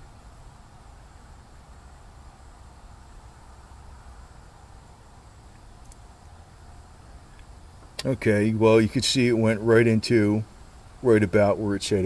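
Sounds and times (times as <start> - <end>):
faint tick: 5.5 - 6.0, 7.3 - 8.1.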